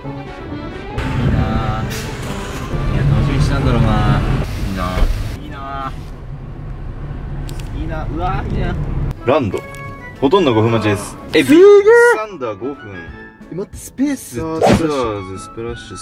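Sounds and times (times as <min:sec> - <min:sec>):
road and engine rumble: 0:00.4 - 0:11.4.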